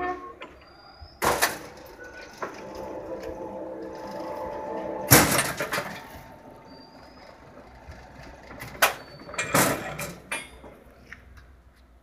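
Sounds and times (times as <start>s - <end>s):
bending machine humming: 1.6s - 10.8s.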